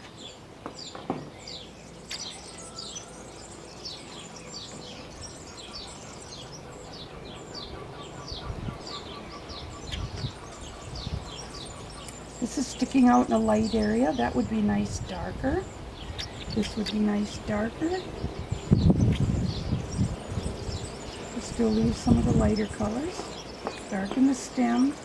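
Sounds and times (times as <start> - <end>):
small bird chirping: 0.0 - 25.0.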